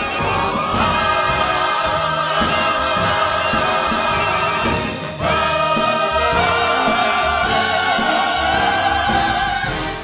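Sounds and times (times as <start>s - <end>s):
chorus singing: 0.0s - 10.0s
orchestra playing: 0.0s - 10.0s.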